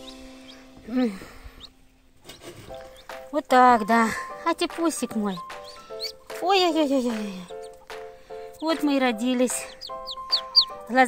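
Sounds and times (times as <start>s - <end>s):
duckling peep: 4.8s - 11.0s.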